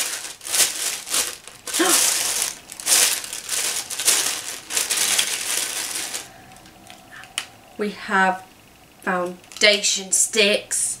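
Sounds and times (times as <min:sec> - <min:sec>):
plastic bag crinkling: 0:00.0 - 0:07.4, 0:09.3 - 0:09.8.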